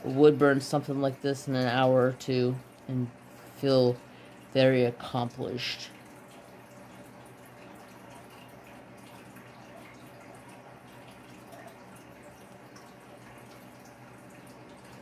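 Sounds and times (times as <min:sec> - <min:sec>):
electrical hum with hiss: 0:00.0 - 0:15.0.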